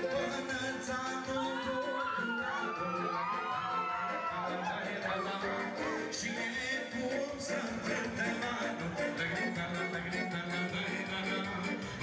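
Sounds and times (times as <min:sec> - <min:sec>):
crowd voices: 0:00.0 - 0:12.0
live band dance music: 0:00.0 - 0:12.0.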